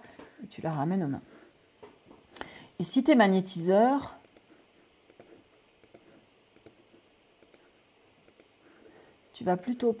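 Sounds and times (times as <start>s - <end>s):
faint computer mouse clicks: 4.2s - 4.5s, 5.1s - 6.8s, 7.4s - 7.6s, 8.2s - 8.5s.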